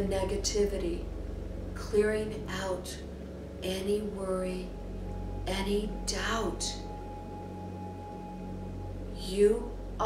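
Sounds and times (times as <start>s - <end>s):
ambient meditation music drone: 0.0s - 10.0s.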